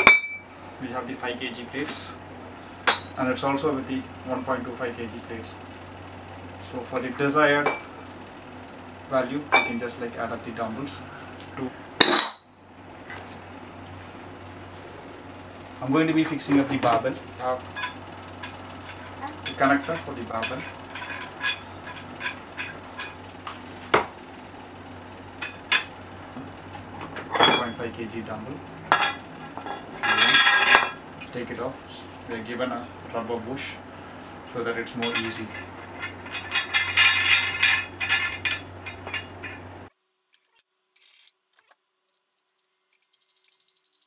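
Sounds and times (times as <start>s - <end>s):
metal weight plates clinking: 17.7s - 23.2s, 35.0s - 39.6s
weight plates clinking: 35.0s - 39.6s.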